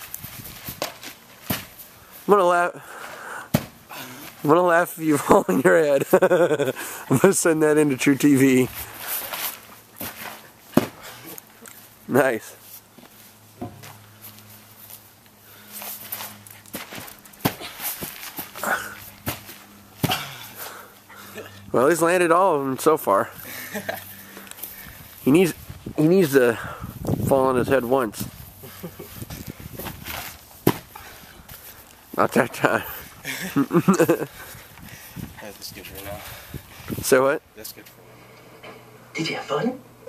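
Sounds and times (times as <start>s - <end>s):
feet landing on grass: 8.9s - 11.2s, 15.8s - 20.5s, 29.2s - 31.8s
short thuds: 29.8s - 30.9s.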